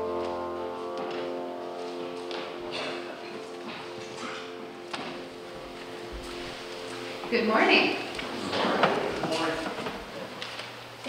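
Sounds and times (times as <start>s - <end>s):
piano and guitars chord: 0.0s - 10.3s.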